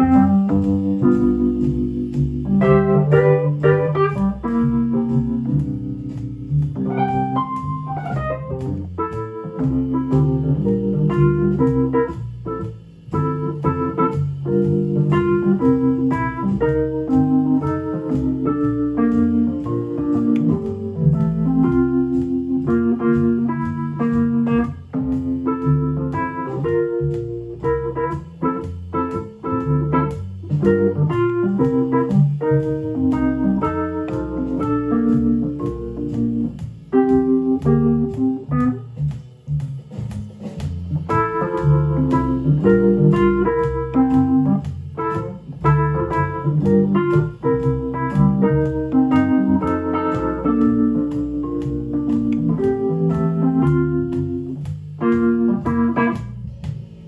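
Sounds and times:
electric piano playing jazz: 0:00.0 - 0:57.0.

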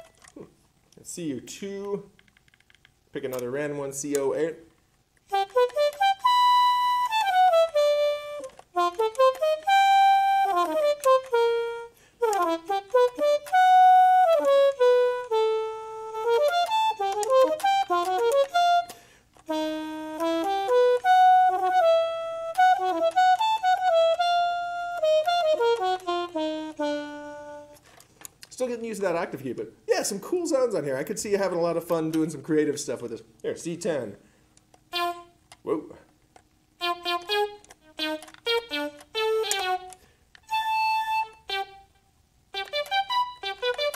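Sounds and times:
digital wind instrument melody: 0:00.0 - 0:00.3, 0:05.3 - 0:27.8, 0:34.9 - 0:35.4, 0:36.8 - 0:43.9.

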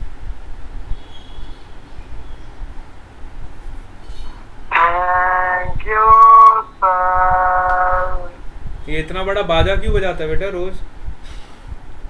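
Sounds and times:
horn blown in held notes: 0:04.7 - 0:08.4.

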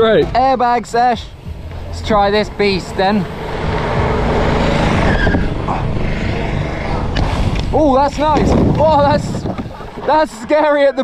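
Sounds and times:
wind and bike tyres on dirt: 0:01.2 - 0:11.0.

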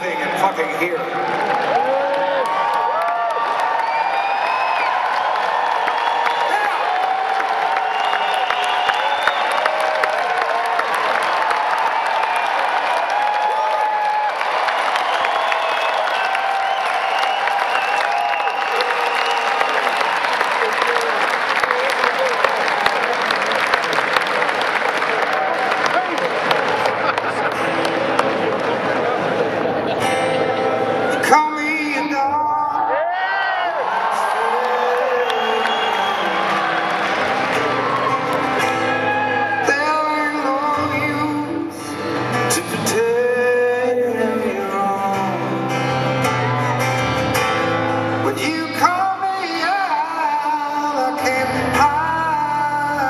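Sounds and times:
audience clapping: 0:00.0 - 0:30.3, 0:32.9 - 0:41.3
crowd whoops and shouts: 0:01.1 - 0:29.2, 0:30.5 - 0:41.9, 0:46.0 - 0:52.0.

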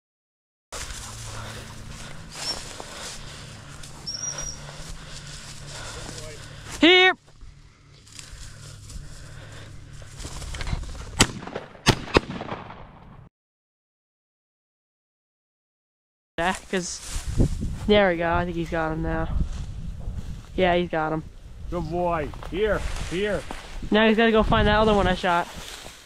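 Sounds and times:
footsteps swishing through dry grass: 0:00.8 - 0:11.2, 0:16.4 - 0:18.1, 0:22.4 - 0:24.1, 0:24.7 - 0:26.0
shotgun shots: 0:11.2 - 0:13.2.

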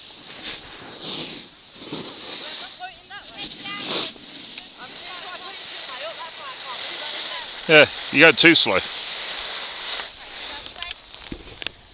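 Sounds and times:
skis sliding on snow: 0:00.0 - 0:11.6.

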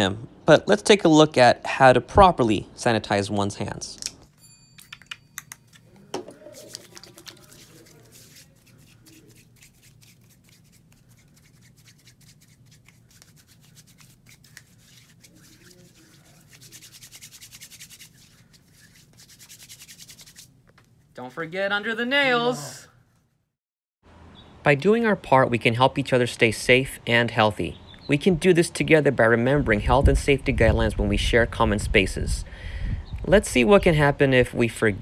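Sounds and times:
hands rubbing together: 0:04.8 - 0:21.1.

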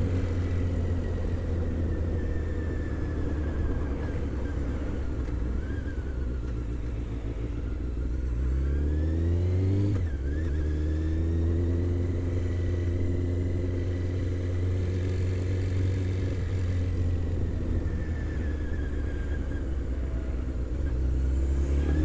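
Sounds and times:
motorcycle engine revving: 0:08.1 - 0:22.0.

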